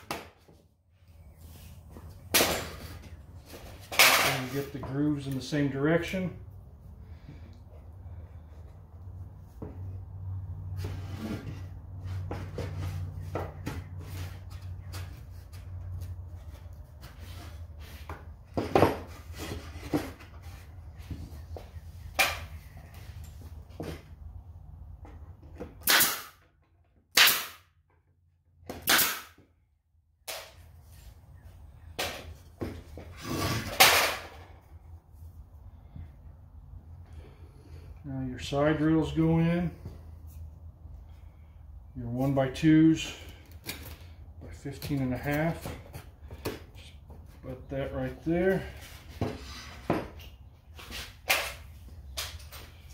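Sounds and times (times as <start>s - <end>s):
pneumatic stapler shots: 25.8s - 26.4s, 27.1s - 27.6s, 28.8s - 29.4s.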